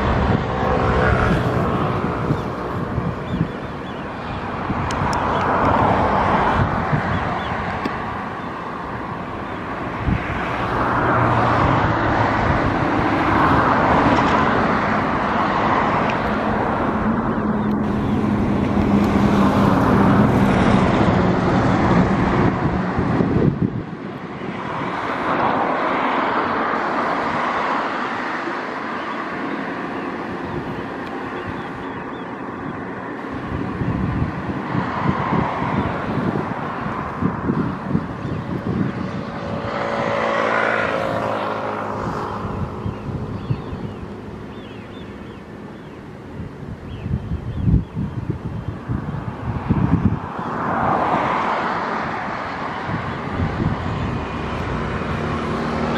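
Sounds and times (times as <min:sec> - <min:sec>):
motor vehicle passing: 0:00.0 - 0:55.9
wind buffeting microphone: 0:00.0 - 0:55.9.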